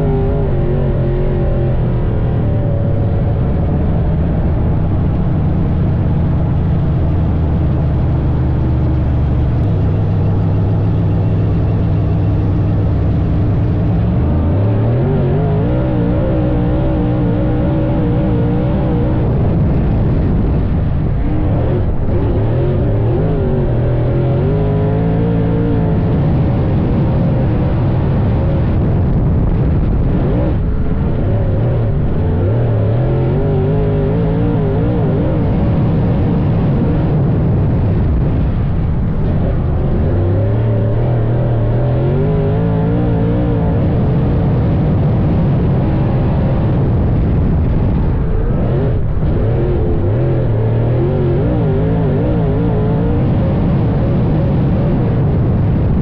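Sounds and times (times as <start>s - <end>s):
race car engine revving: 0.0s - 56.0s.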